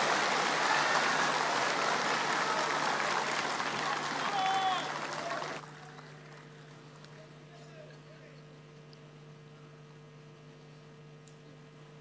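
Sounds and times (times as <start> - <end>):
large audience applauding: 0.0 - 6.8.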